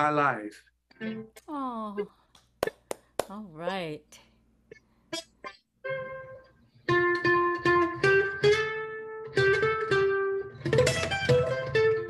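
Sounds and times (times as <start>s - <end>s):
acoustic guitar picked notes: 5.1s - 12.0s.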